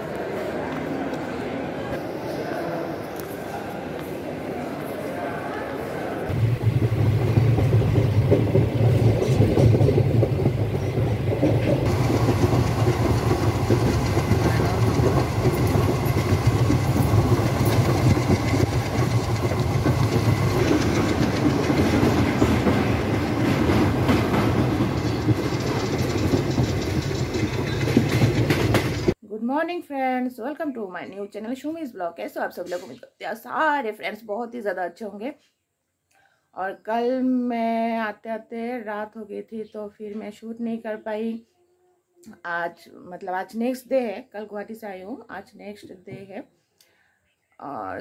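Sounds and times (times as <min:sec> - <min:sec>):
train clatter: 0:06.3 - 0:29.2
train wheels rumbling on rail: 0:06.3 - 0:29.2.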